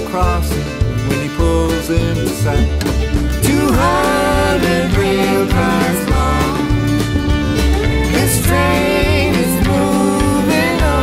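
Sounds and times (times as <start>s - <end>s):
folk country band music: 0.0s - 11.0s.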